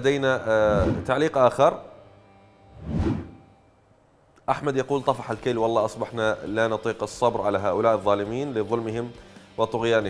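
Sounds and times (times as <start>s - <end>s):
whoosh sound effect: 0.6s - 1.1s, 2.8s - 3.5s.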